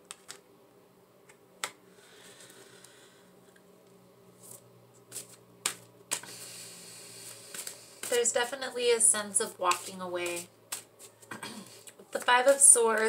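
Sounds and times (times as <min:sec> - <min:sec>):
cards clicking and tapping: 0:00.0 - 0:00.4, 0:05.0 - 0:06.4, 0:07.3 - 0:08.7, 0:09.4 - 0:11.2
faint room hum: 0:00.0 - 0:13.0.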